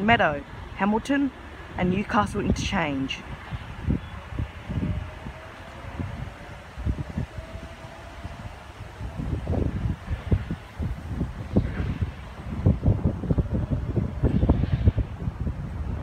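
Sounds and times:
wind buffeting microphone: 0.0 - 16.0
electric train pulling away: 3.2 - 16.0.

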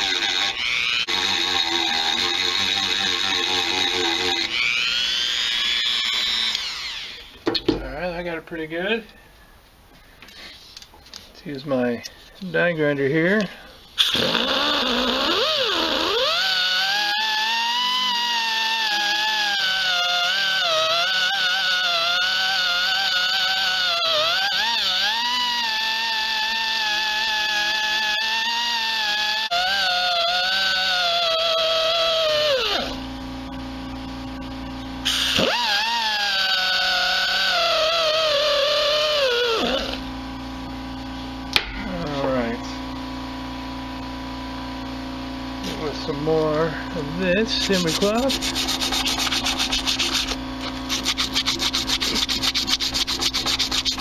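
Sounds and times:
die grinder whining: 0.0 - 7.4, 14.0 - 54.0
steady low hum: 0.0 - 16.2, 30.4 - 36.2, 37.0 - 54.0.

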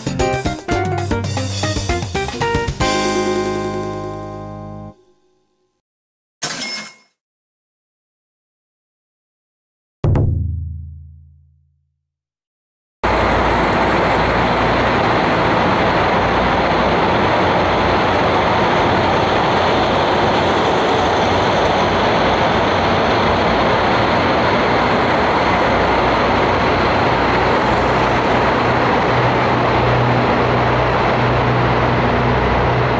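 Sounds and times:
train rumbling: 0.0 - 4.5, 13.0 - 32.9.

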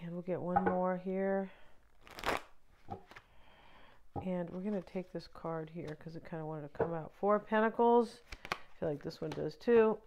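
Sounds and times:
cards shuffling: 2.0 - 3.3, 8.2 - 9.5.

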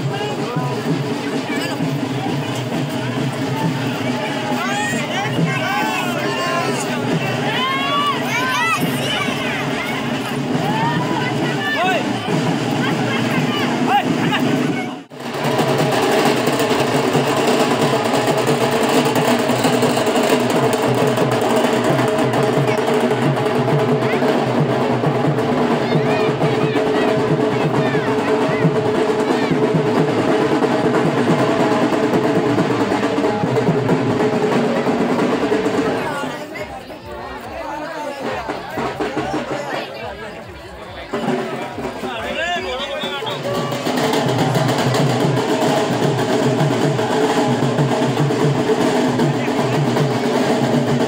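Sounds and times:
fast dense drumming: 0.0 - 36.8, 38.2 - 51.0
crowd shouting: 0.0 - 51.0.

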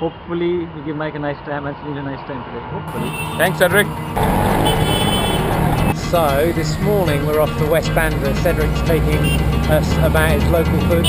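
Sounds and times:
vehicle horn: 2.9 - 6.0, 9.2 - 9.5
road traffic rumble: 2.9 - 11.0.

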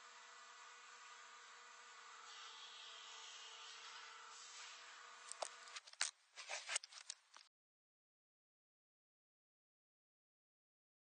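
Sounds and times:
low electrical hum: 0.0 - 7.5.

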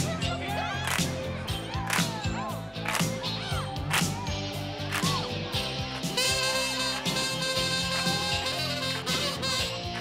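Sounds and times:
bass guitar: 0.0 - 10.0
saxophone playing short notes: 6.1 - 10.0.

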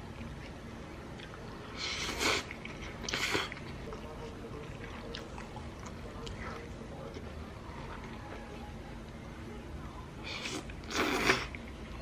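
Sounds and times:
chewing food close up: 0.1 - 9.2.

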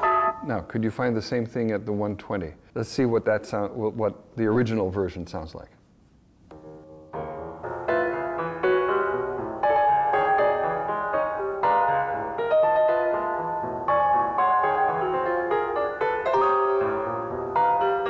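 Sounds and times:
solo piano music: 0.0 - 0.5, 6.5 - 18.0.

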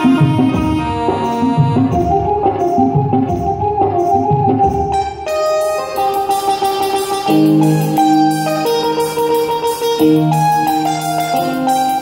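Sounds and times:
live instrumental music: 0.0 - 12.0.

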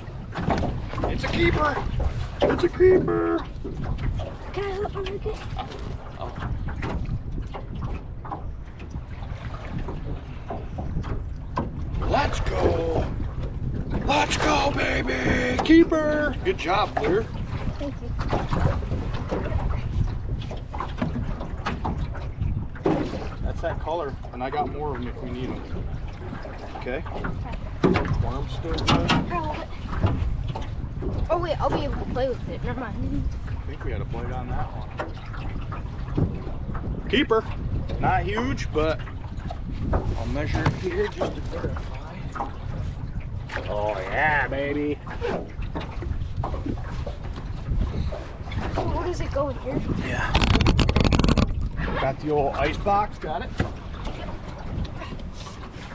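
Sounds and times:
knocks on boat: 0.0 - 16.3, 17.0 - 23.5, 24.6 - 32.4, 33.4 - 43.7, 45.0 - 51.7, 53.2 - 55.2
water moving around boat: 0.0 - 55.9
wind buffeting microphone: 0.0 - 55.9.

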